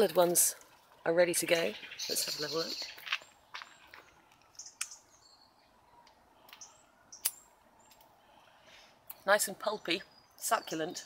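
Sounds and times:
faint bird chirps: 1.5 - 11.0.

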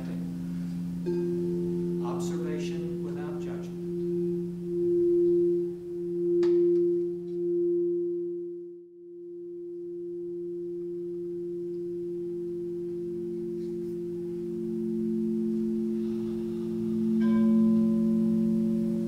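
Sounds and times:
crystal singing bowls ringing: 0.0 - 19.0.

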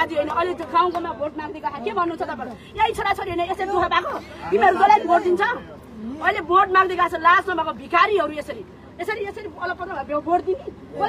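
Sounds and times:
woman talking: 0.0 - 10.8
people chattering: 0.0 - 11.0.

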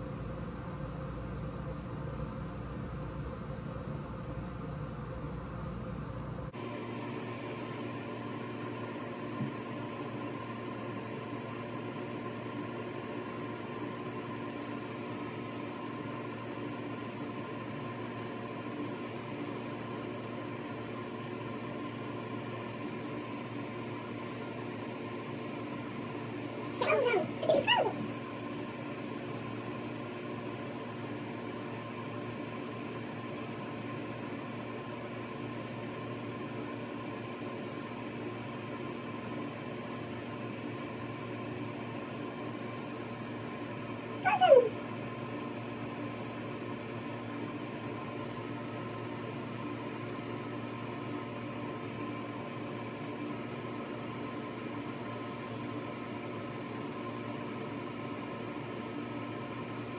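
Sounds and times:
room hum with fixed tones: 0.0 - 59.9.

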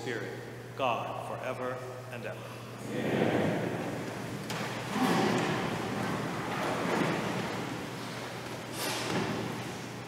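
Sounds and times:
crowd rustling and shuffling: 2.8 - 10.0.

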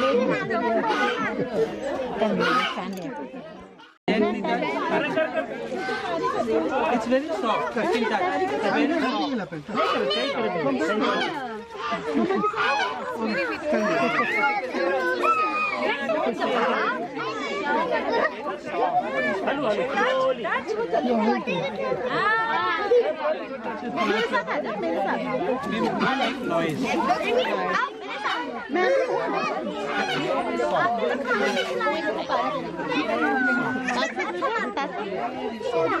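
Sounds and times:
overlapping chatter: 0.0 - 36.0.

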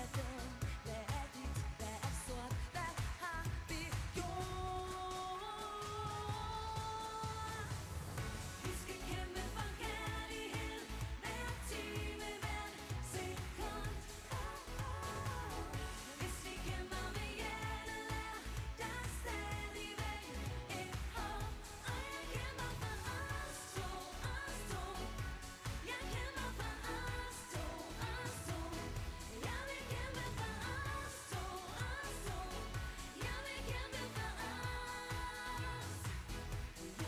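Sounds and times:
women singing pop song: 0.0 - 37.0.

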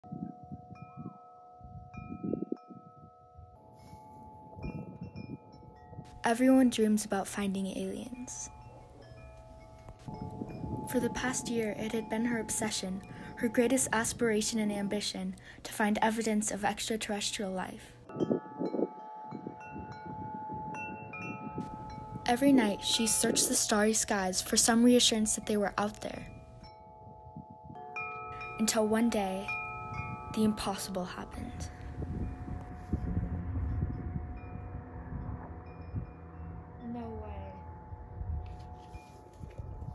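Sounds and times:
metal wind chime ringing: 0.0 - 15.5, 16.1 - 39.9.

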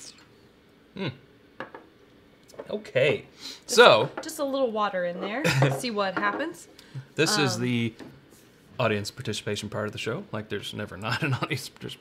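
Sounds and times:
person humming: 1.0 - 1.2.

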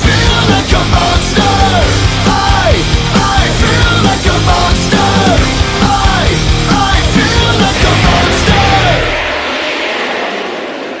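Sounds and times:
hard rock song: 0.0 - 11.0
distorted guitar ringing: 0.2 - 11.0.

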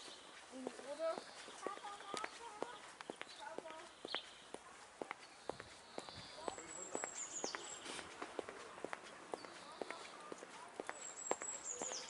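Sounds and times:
birds singing: 0.0 - 8.2, 9.0 - 12.0
footsteps on a paved path: 0.0 - 12.0.

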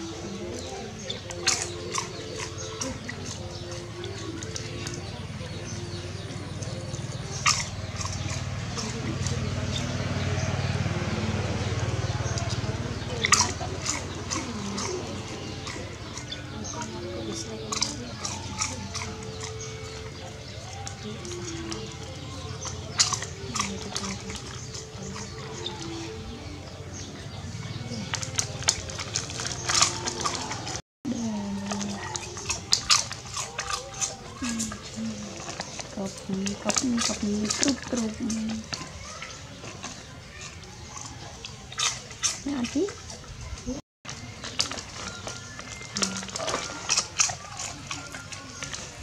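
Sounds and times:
dog snuffling and eating: 0.0 - 49.0.

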